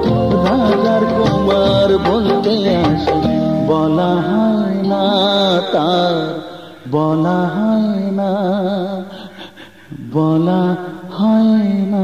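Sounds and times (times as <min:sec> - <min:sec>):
singer holding notes with vibrato: 0:00.0 - 0:06.9.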